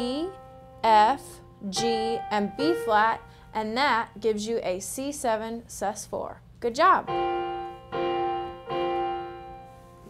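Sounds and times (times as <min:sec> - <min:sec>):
piano chord ringing: 0:00.0 - 0:04.1, 0:07.0 - 0:10.0.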